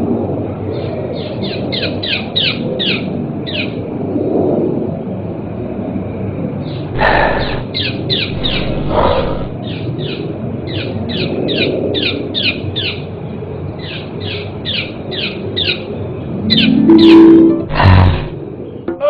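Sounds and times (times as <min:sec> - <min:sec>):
steady low rumble: 0:04.9 - 0:09.7
bird chirping: 0:06.7 - 0:09.8
loud rough noise: 0:06.9 - 0:09.6, 0:17.7 - 0:18.4.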